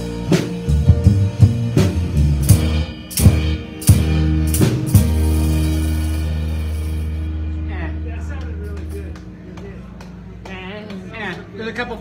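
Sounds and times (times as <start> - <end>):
live band final chord: 0.0 - 10.4
low bass note: 1.0 - 9.9.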